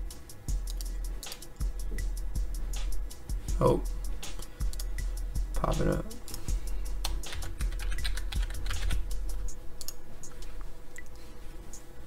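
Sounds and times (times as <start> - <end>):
typing on computer keyboard: 7.3 - 9.0.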